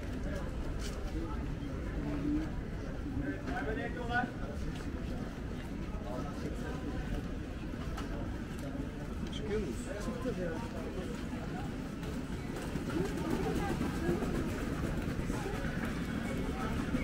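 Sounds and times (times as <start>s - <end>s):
low street rumble: 0.0s - 17.0s
passers-by talking: 0.0s - 17.0s.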